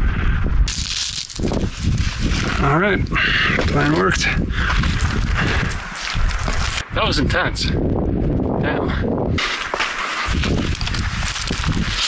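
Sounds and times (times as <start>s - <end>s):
wind rumbling on microphone: 0.0s - 12.0s
clothing and shoes scraping rock: 1.4s - 3.0s, 9.4s - 12.0s.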